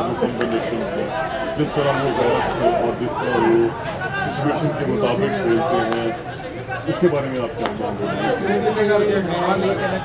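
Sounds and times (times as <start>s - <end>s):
several voices talking: 0.0s - 10.0s.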